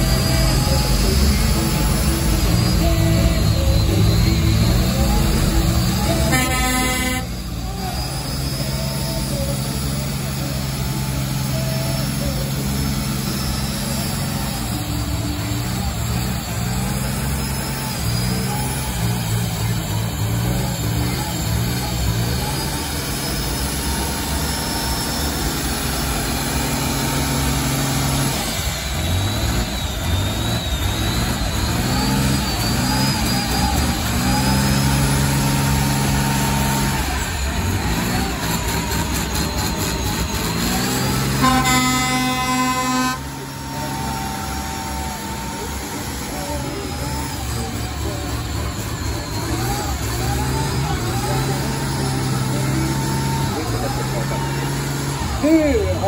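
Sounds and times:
turbocharged engine at high revs: 0.0s - 56.0s
loud horn blaring: 0.4s - 7.8s, 40.4s - 45.9s.

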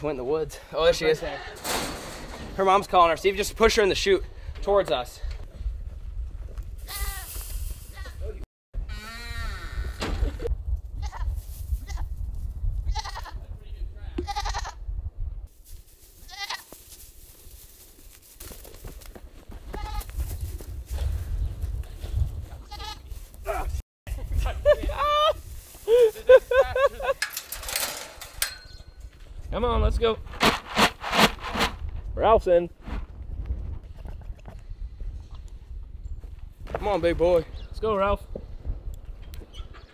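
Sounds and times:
goats bleating: 16.3s - 16.6s.

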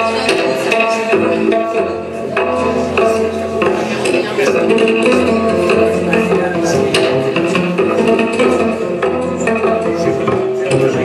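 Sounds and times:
double bass music: 0.0s - 11.0s.

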